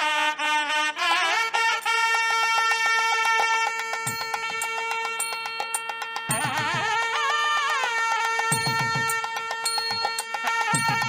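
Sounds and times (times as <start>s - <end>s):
held reed note: 3.4s - 11.0s
fast drum strokes: 3.8s - 11.0s.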